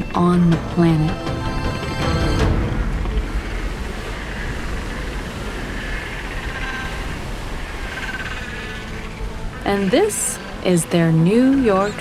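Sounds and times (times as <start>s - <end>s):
low rumble of surf: 2.5s - 12.0s
penguin colony braying calls: 3.4s - 12.0s.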